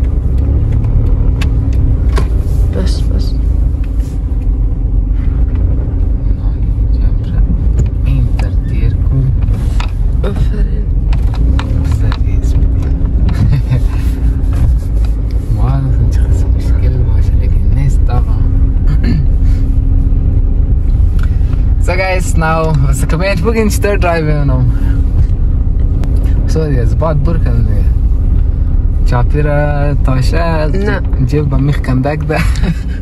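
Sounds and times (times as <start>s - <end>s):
car engine and road rumble: 0.0s - 33.0s
constant hum: 0.0s - 33.0s.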